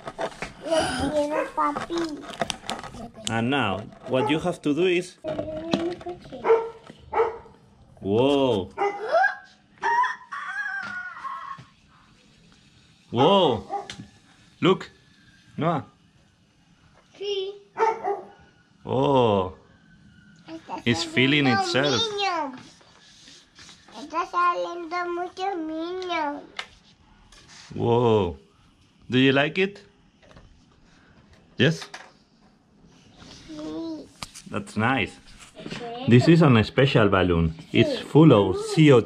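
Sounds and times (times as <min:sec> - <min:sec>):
dog barking: 0:01.3 - 0:01.6, 0:04.1 - 0:04.5, 0:06.4 - 0:07.6, 0:08.7 - 0:09.4, 0:13.2 - 0:14.0, 0:17.8 - 0:18.5
person's voice: 0:20.9 - 0:22.2, 0:37.6 - 0:39.0.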